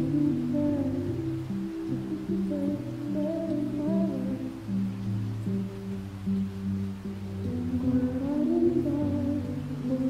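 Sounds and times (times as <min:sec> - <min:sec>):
person singing high melody: 0:00.0 - 0:05.7, 0:07.4 - 0:10.0
slow acoustic song: 0:00.0 - 0:10.0.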